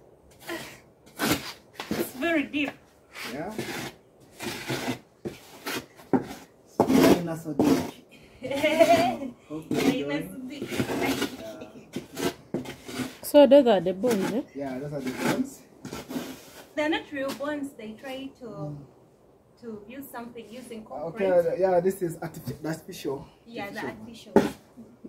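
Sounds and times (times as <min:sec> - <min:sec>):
scraping in sand: 0:01.1 - 0:02.5, 0:03.2 - 0:13.3, 0:14.0 - 0:17.5.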